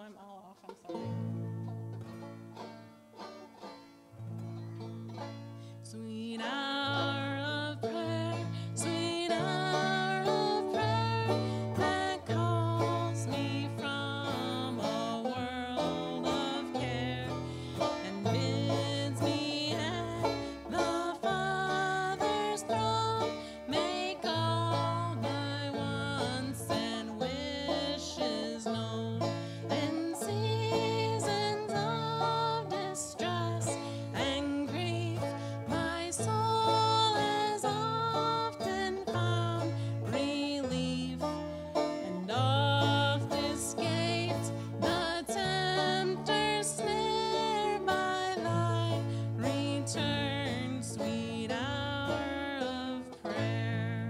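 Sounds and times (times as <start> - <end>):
acoustic guitar: 0.0 - 54.0
banjo picking: 0.0 - 54.0
bass guitar notes: 0.9 - 5.8, 6.9 - 54.0.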